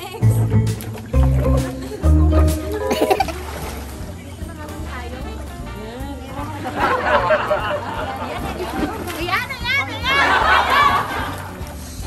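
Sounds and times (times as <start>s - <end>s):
water splashing: 0.0s - 5.6s, 6.6s - 12.0s
women laughing and squealing: 1.7s - 3.5s, 6.7s - 11.6s.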